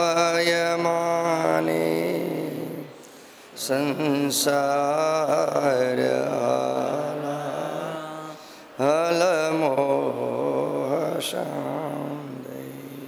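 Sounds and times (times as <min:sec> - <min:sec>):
man chanting melodically: 0:00.0 - 0:02.9, 0:03.6 - 0:13.0.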